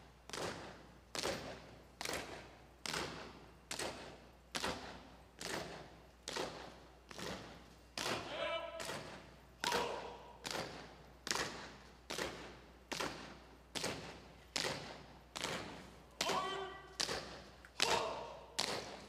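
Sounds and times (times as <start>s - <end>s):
marching footsteps on a stage: 0.0s - 19.0s.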